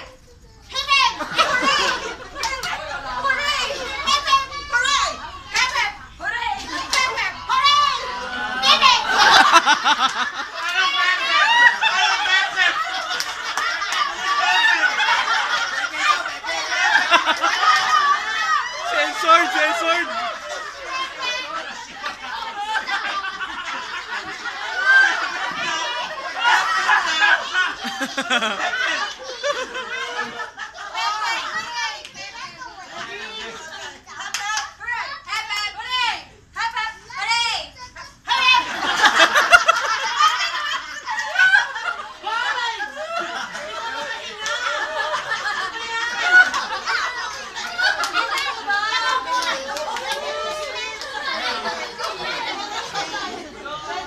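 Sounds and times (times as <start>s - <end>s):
women and girls laughing and shrieking: 0.7s - 34.0s, 34.9s - 54.0s.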